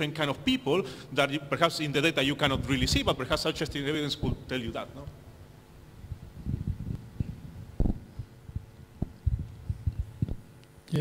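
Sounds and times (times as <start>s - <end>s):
faint steady hum: 0.0s - 11.0s
low thuds and bumps: 6.1s - 10.4s.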